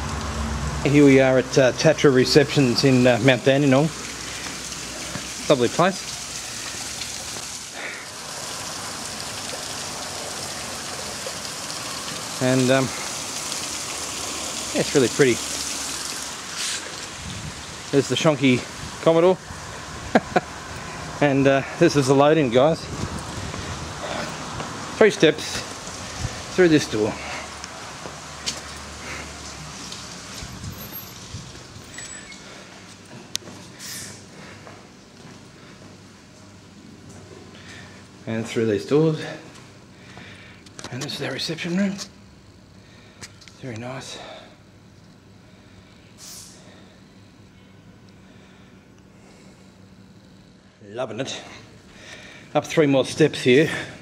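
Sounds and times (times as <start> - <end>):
water streams splashing into pool: 0.0 - 33.0.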